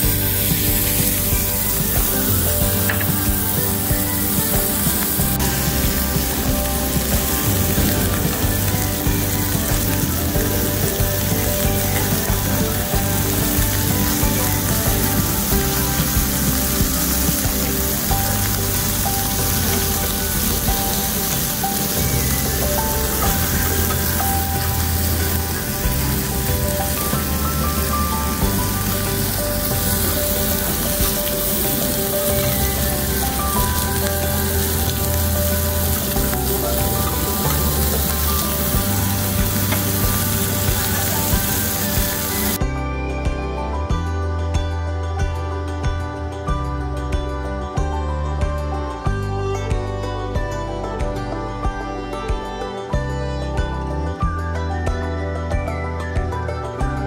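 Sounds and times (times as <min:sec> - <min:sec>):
meat sizzling on a griddle: 0:00.0 - 0:42.6
background music with bass line: 0:00.0 - 0:57.0.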